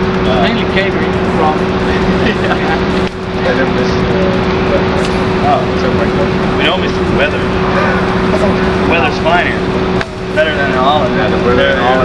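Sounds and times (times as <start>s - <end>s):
rushing background noise: 0.0s - 12.0s
steady low hum: 0.0s - 12.0s.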